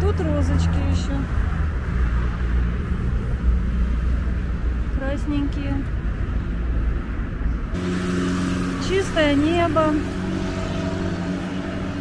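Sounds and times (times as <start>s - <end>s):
road traffic noise: 0.0s - 12.0s
vehicle engine humming: 0.0s - 12.0s.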